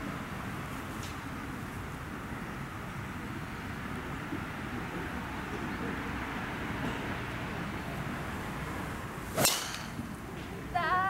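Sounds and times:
golf club swish: 0:09.2 - 0:10.1
clubhead striking ball: 0:09.3 - 0:10.1.

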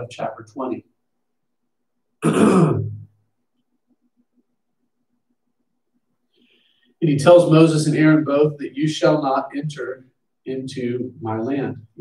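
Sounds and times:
man clearing his throat: 0:02.2 - 0:03.1.

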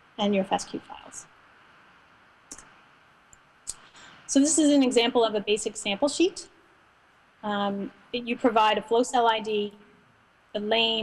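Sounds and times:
faint steady hiss: 0:00.0 - 0:11.0.

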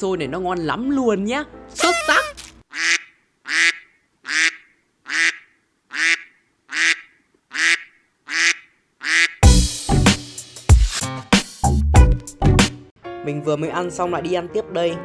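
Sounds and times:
comic sound effect: 0:01.8 - 0:02.4
loud music: 0:09.4 - 0:12.9.

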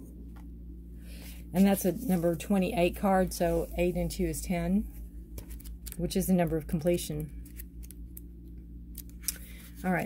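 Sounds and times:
steady low hum: 0:00.0 - 0:10.0
woman speaking: 0:01.5 - 0:05.0, 0:06.0 - 0:07.3.

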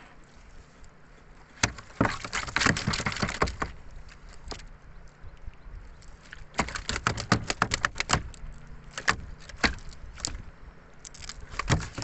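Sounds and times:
fish knocking in wooden boat: 0:01.6 - 0:03.8, 0:06.5 - 0:10.4, 0:11.5 - 0:12.0.

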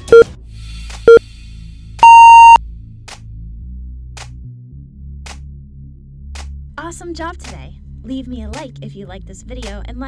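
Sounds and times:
timer beeps: 0:00.0 - 0:00.2, 0:02.0 - 0:02.6.

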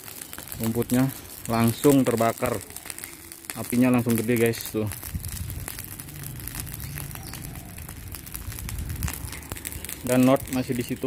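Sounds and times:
dry grass fire crackling: 0:00.0 - 0:11.0
low steady rumble: 0:04.9 - 0:10.0.

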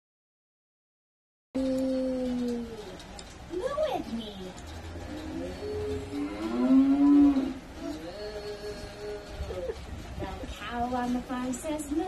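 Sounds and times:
person humming: 0:01.6 - 0:03.0, 0:05.3 - 0:09.8.

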